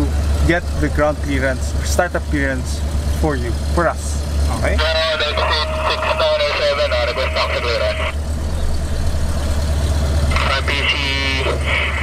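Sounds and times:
man speaking on radio: 3.3 - 8.2, 10.2 - 12.0
low drone of machinery: 4.4 - 12.0.

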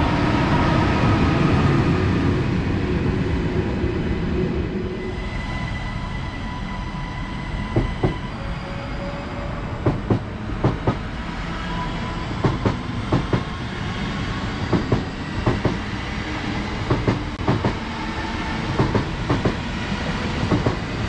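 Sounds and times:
train rumble: 0.0 - 21.0
train wheels clacking over rail joints: 9.8 - 11.0, 12.4 - 13.5, 14.7 - 15.8, 16.9 - 17.8, 18.8 - 19.6, 20.5 - 20.8.

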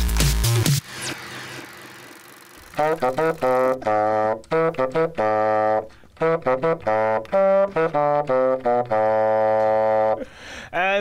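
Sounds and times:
bassoon playing: 2.6 - 10.3
man speaking: 10.7 - 11.0.

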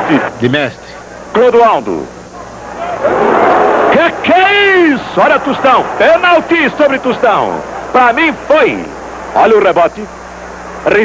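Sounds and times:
football stadium crowd roar: 2.4 - 9.3.

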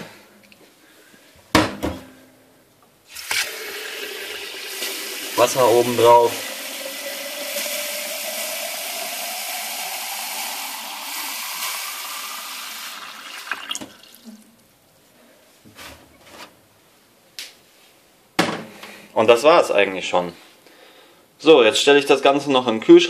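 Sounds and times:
water running into a jug: 3.1 - 14.5.

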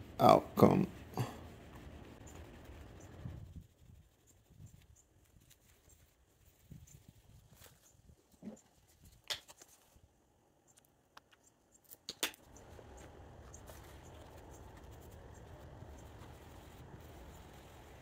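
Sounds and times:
pad rubbing on car paint: 0.0 - 7.9, 12.6 - 18.0
sharp clicks: 10.8 - 12.6.

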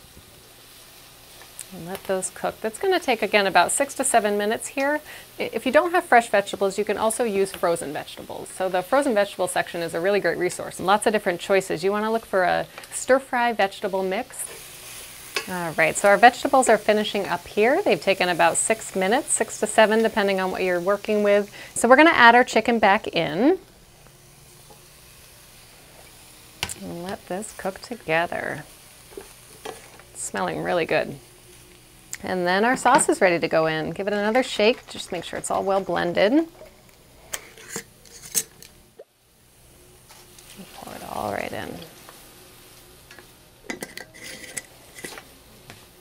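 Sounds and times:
vegetables sizzling in a skillet: 0.0 - 46.0.

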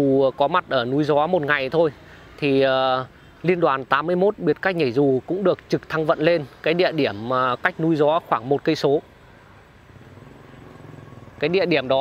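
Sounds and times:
distant motorbike engine: 4.1 - 12.0.

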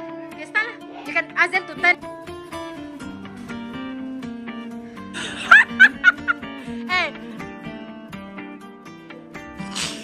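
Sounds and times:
plucked guitar music: 0.0 - 10.0
person laughing: 5.2 - 6.5.

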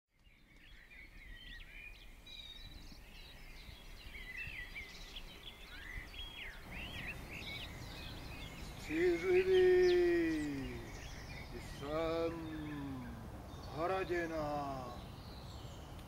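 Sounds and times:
small birds singing: 0.1 - 16.0.

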